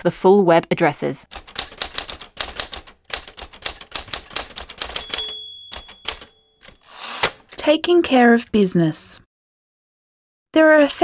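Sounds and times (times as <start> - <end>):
typewriter keys striking: 1.3 - 7.6
typewriter bell ringing: 4.3 - 7.2.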